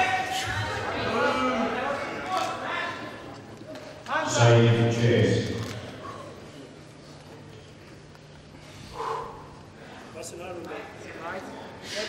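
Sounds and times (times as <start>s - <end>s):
indistinct voice in a hall: 0.0s - 7.7s.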